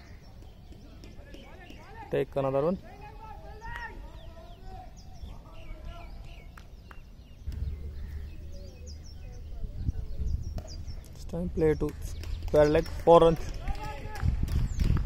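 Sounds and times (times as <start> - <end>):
faint distant voices: 0.0 - 14.8
birds chirping: 0.0 - 15.0
low rumble: 7.5 - 11.0.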